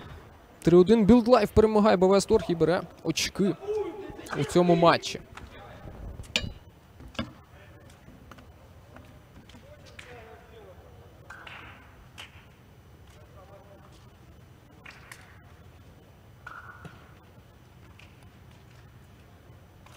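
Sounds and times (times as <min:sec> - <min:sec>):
players talking and calling out: 0:02.0 - 0:06.2.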